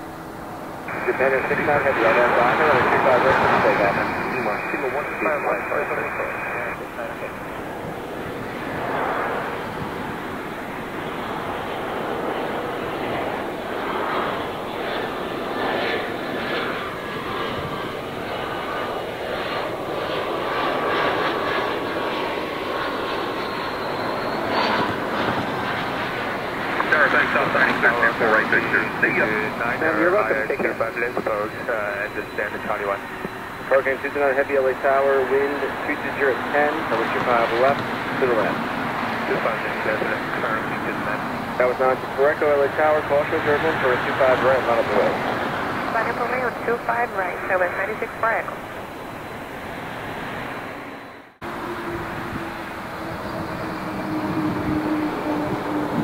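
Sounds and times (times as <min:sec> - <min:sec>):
jet engines on approach: 0:00.0 - 0:56.0
air traffic control radio voices: 0:00.8 - 0:49.3.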